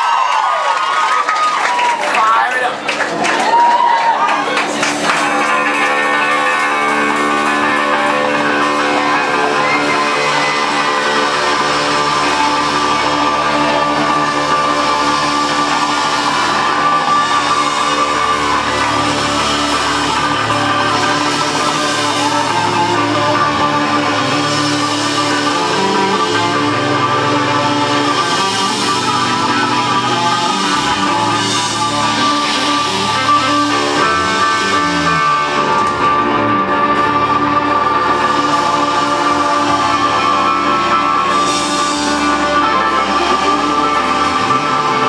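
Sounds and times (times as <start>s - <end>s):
electric guitar ringing chords: 4.4s - 45.0s.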